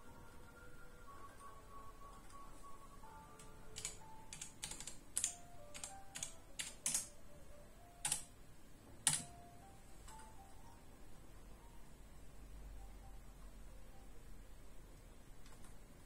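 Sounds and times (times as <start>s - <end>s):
simple electronic hold music: 0.0s - 16.0s.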